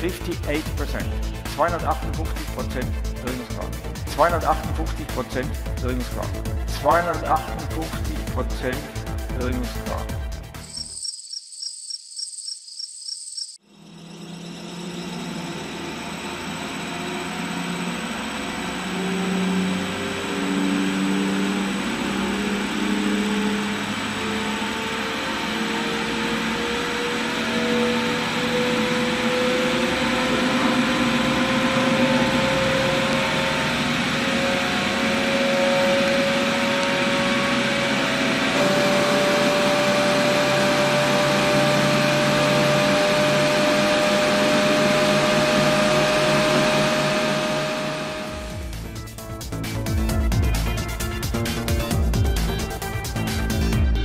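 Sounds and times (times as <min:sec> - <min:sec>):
electric motor hum rising in pitch: 0:09.8 - 0:54.0
high pulsing tone: 0:10.6 - 0:16.4.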